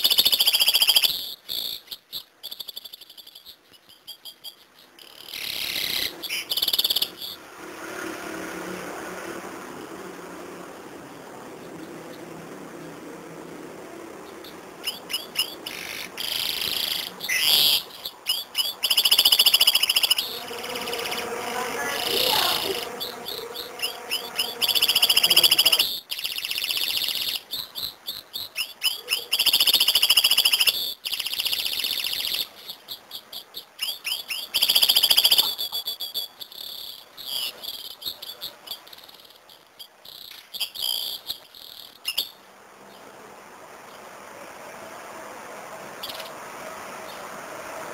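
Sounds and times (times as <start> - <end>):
canary singing trills: 0.0 - 7.5, 14.2 - 43.1.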